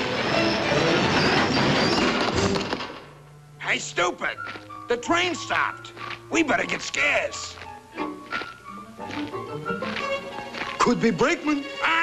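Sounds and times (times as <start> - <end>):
train wheels squealing braking: 0.0 - 2.6.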